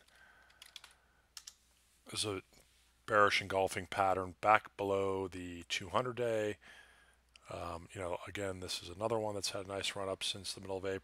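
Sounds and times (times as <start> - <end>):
faint keyboard typing: 0.0 - 1.6.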